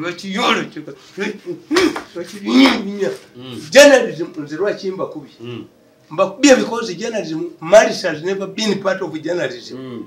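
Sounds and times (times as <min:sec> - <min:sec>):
man speaking emphatically: 0:00.0 - 0:05.4, 0:06.1 - 0:10.0.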